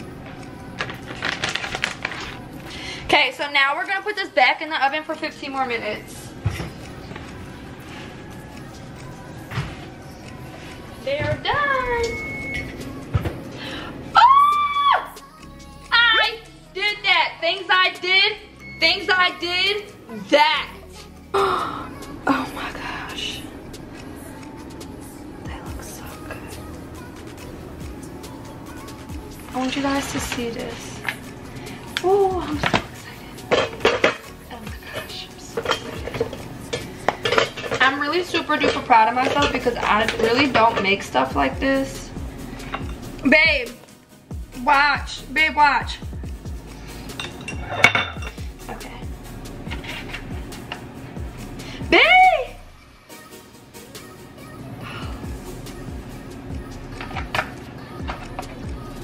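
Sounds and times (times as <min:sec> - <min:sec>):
tongs clattering on foil pan: 0:00.7 - 0:02.4, 0:29.4 - 0:31.3, 0:33.5 - 0:41.9, 0:47.0 - 0:48.4, 0:49.6 - 0:50.8.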